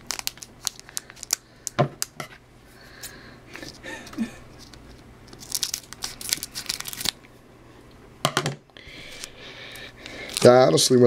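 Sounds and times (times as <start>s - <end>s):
foil wrapper crinkling and tearing: 0.0s - 2.1s, 4.6s - 7.2s, 10.0s - 10.8s.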